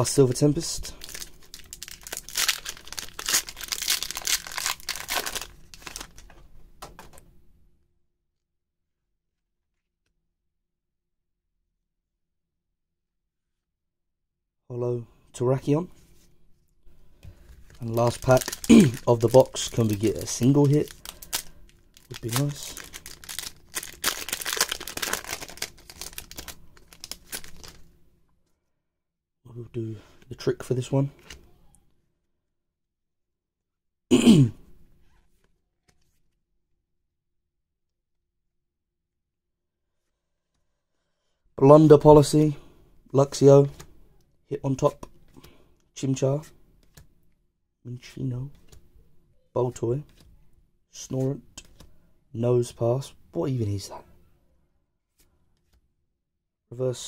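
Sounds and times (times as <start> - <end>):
foil wrapper tearing and crinkling: 1.0 - 6.2, 17.8 - 27.8.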